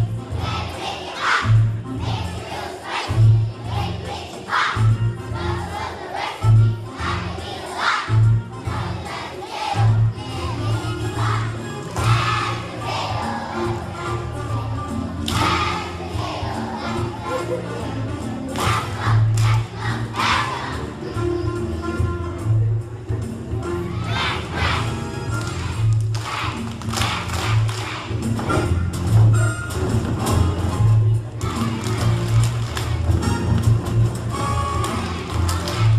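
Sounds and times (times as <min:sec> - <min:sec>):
musical accompaniment: 0:00.0 - 0:35.9
children singing together: 0:00.3 - 0:21.1, 0:24.0 - 0:25.0.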